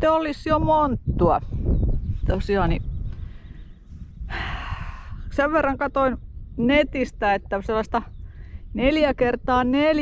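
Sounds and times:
steady low rumble: 0.5s - 9.9s.

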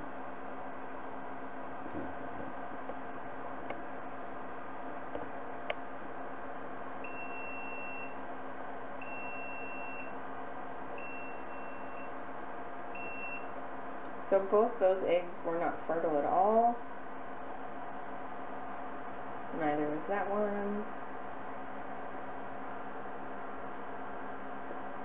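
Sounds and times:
constant background hum: 0.0s - 25.0s
high electronic alarm beeps: 7.0s - 8.2s, 9.0s - 10.1s, 11.0s - 12.1s, 13.0s - 13.5s.

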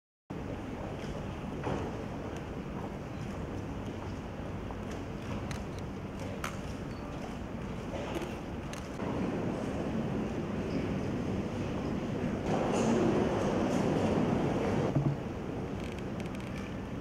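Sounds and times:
large hall background noise: 0.3s - 17.0s.

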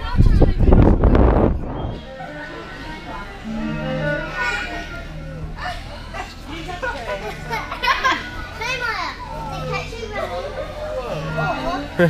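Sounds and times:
children chattering and squealing: 1.9s - 12.0s
low steady hum: 3.4s - 6.0s.

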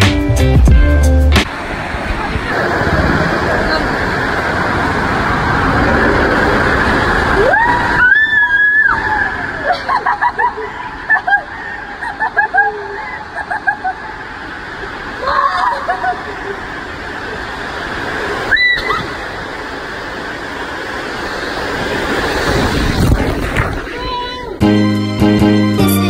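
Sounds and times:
water slide rushing: 1.5s - 24.6s.

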